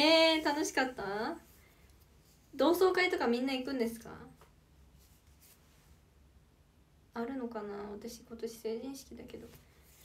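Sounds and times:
woman speaking: 0:00.0 - 0:01.5, 0:02.6 - 0:04.4, 0:07.2 - 0:09.6
faint hiss: 0:00.0 - 0:10.0
faint brief rustle: 0:04.4 - 0:06.0.

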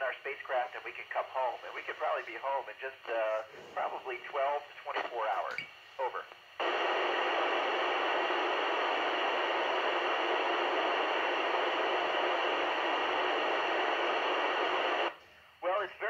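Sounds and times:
radio static hiss: 0:00.0 - 0:16.0.

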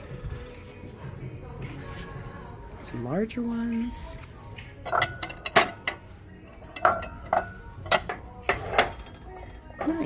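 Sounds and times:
ceramic bowls clinking: 0:04.8 - 0:10.0.

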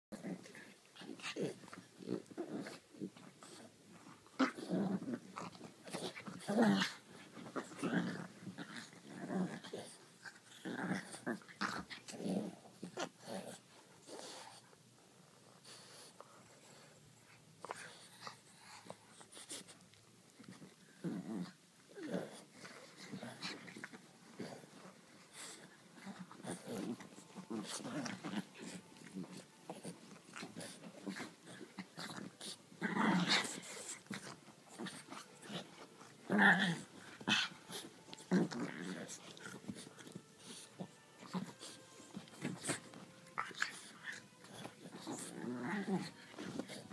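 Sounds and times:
dogs growling: 0:00.1 - 0:14.7, 0:15.6 - 0:46.9.

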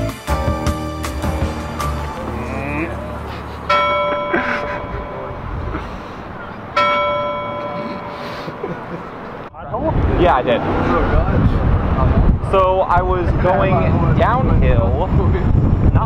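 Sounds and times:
city background noise: 0:00.0 - 0:16.0
large bell ringing: 0:01.4 - 0:09.5.

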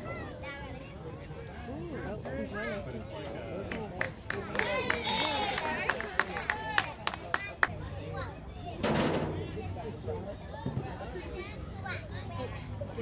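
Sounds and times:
voices talking and calling out: 0:00.0 - 0:13.0
sharp claps: 0:03.6 - 0:07.8.

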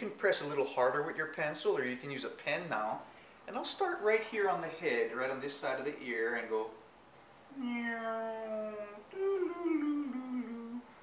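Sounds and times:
man humming long notes: 0:07.5 - 0:11.0.

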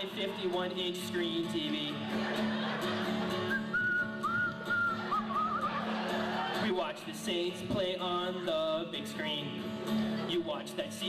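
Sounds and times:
acoustic guitar accompaniment: 0:00.0 - 0:11.0
person whistling a high note: 0:03.5 - 0:05.7.

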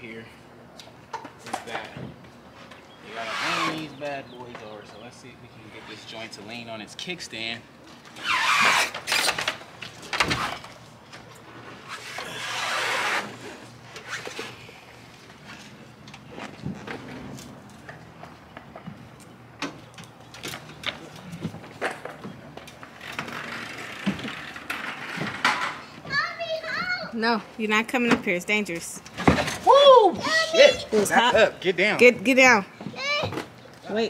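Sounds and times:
motorcycle scraping in truck bed: 0:11.5 - 0:14.7, 0:23.0 - 0:26.0.

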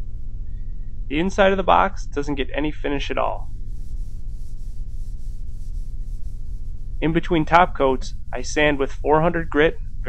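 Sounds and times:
low hum: 0:00.0 - 0:10.0
hand sanding wood: 0:03.2 - 0:09.8.

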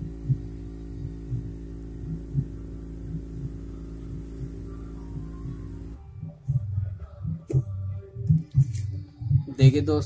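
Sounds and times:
soft low thumps: 0:00.0 - 0:09.8
steady low hum: 0:00.0 - 0:10.0.

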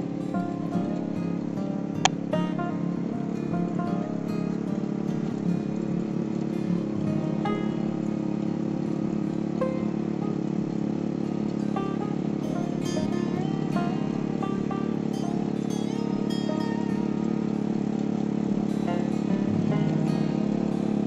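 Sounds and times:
plucked guitar music: 0:00.0 - 0:21.0
small tiller engine running: 0:00.0 - 0:21.0.

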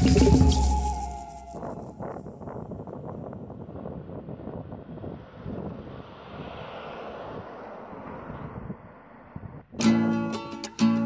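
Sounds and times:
wind on microphone: 0:00.0 - 0:09.8
van driving past: 0:04.3 - 0:09.4.

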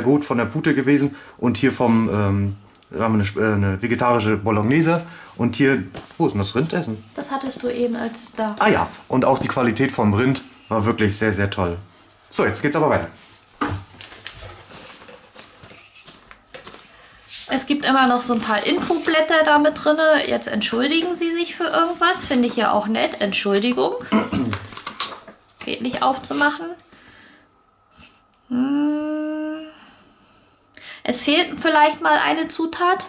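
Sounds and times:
paper leaflets rustling: 0:13.6 - 0:19.6
person humming: 0:28.4 - 0:30.0.

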